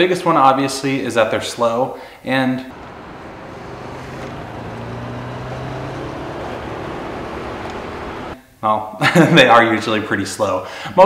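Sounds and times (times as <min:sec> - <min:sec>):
car engine running: 0:02.7 - 0:08.4
road noise: 0:02.7 - 0:08.4.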